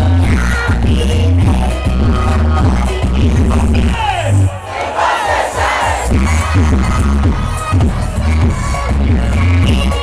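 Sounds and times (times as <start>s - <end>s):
loud dance music with heavy bass: 0.0s - 10.0s
crowd cheering: 4.4s - 7.6s.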